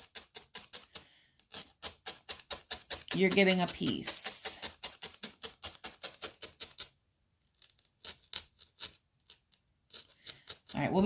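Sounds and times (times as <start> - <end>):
felting needle stabbing foam: 0.0 - 7.0, 7.6 - 11.0.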